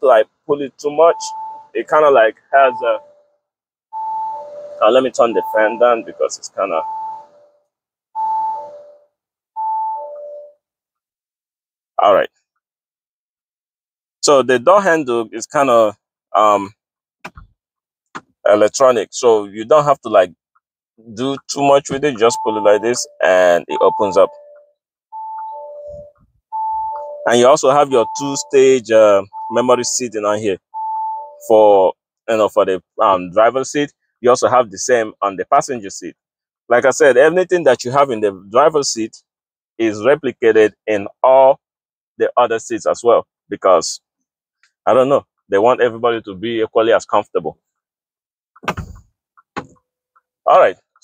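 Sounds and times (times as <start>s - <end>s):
two-note warning chime: 4.3s - 6.2s, 22.2s - 24.6s.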